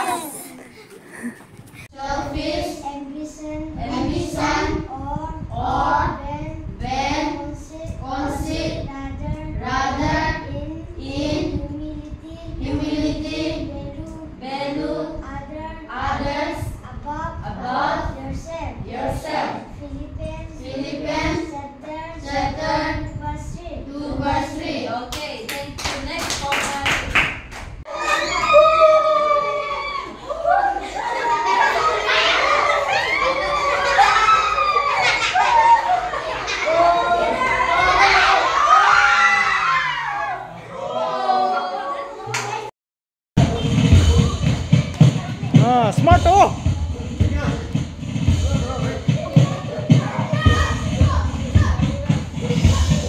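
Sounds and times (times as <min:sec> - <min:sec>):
hands clapping in rhythm: 0:25.2 - 0:27.8, 0:42.3 - 0:42.6.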